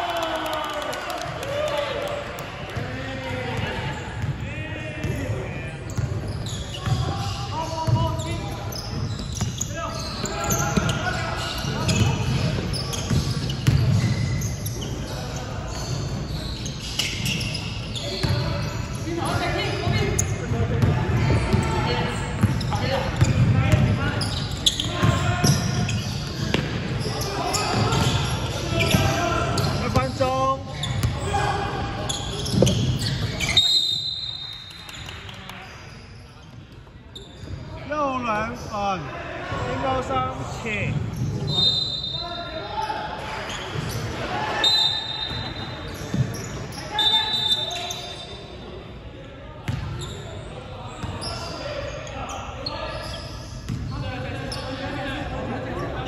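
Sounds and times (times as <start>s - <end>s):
referee's whistle: 32.1s - 34.7s, 41.4s - 42.5s, 44.6s - 48.5s.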